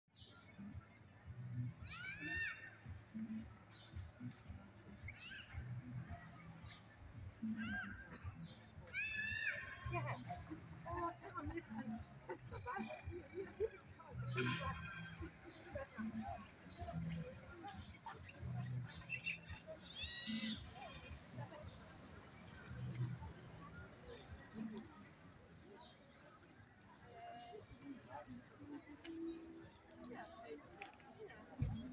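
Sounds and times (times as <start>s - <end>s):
murmur of street voices: 0.1s - 31.9s
birds calling: 1.9s - 24.9s.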